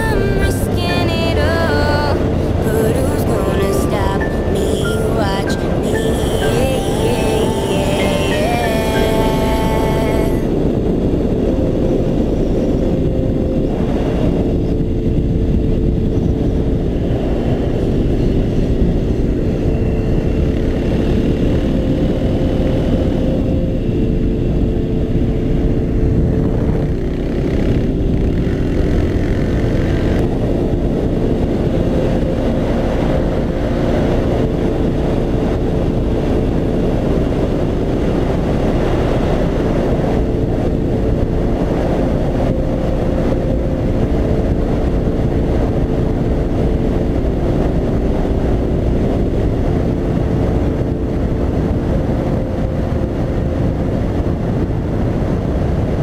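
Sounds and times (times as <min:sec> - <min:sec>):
wind rush on microphone: 0:00.0 - 0:56.0.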